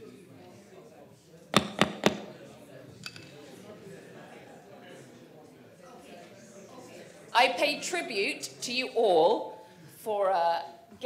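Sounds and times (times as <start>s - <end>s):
thumps on a microphone: 1.6s - 2.4s.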